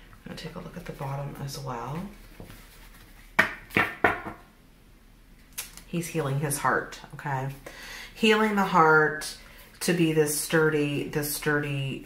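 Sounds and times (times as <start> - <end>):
card decks knocking on table: 3.4 - 4.4.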